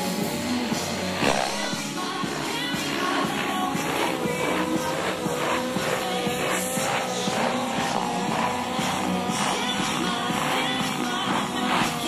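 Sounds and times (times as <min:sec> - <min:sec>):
music with steady beat: 0:00.0 - 0:12.0
rc helicopter engine whine: 0:00.0 - 0:12.0.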